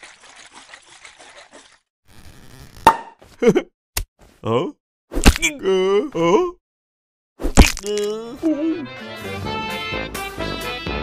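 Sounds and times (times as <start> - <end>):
champagne cork popping: 7.5 - 8.1.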